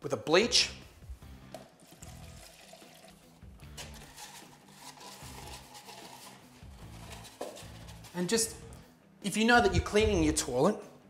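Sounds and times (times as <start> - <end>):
soft music with bass line: 0.3 - 11.0
liquid pouring into plastic bottle: 1.5 - 7.6.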